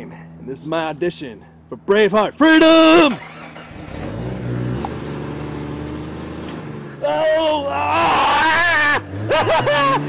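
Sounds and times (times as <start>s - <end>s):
car engine pulling away: 2.8s - 7.1s, 8.1s - 10.0s.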